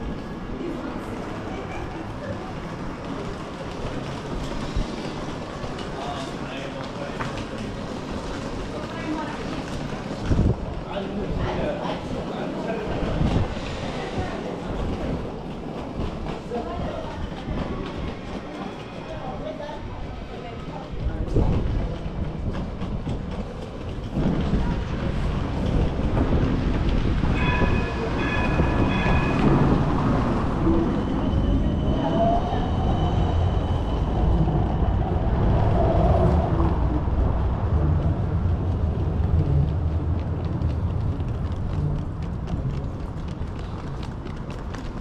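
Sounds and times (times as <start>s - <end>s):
tram wheels rumbling: 0.0s - 45.0s.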